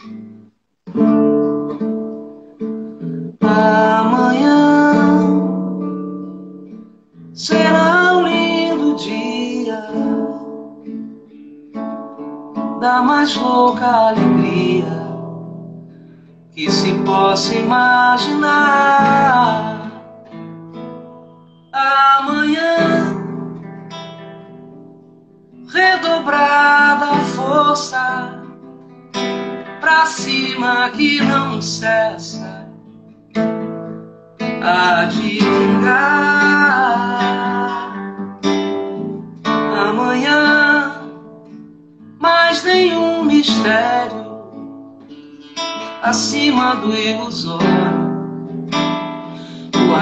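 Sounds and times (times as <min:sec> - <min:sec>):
acoustic guitar strumming: 0:00.0 - 0:50.0.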